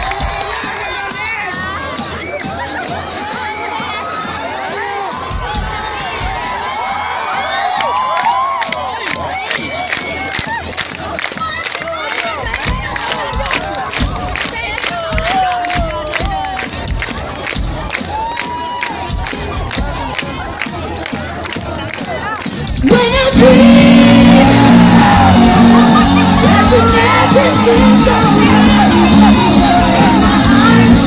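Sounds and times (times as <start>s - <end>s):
full band playing: 0.0s - 31.0s
crowd singing along: 22.9s - 31.0s.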